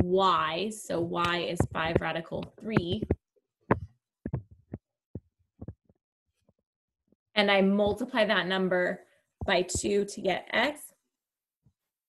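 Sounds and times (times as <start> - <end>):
stylus tapping on tablet screen: 1.0 - 6.0, 9.4 - 10.0.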